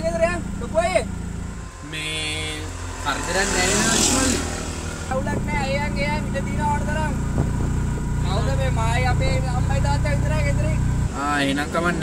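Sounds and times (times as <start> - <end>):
auto-rickshaw engine running: 0.0 - 12.0.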